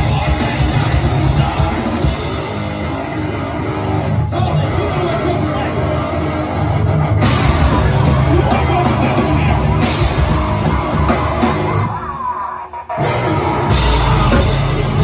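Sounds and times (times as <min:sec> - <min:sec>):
heavy metal band playing: 0:00.0 - 0:15.0.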